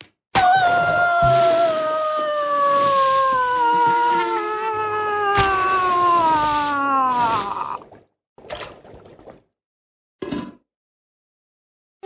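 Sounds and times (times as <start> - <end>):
woman wailing: 0.7 - 7.8.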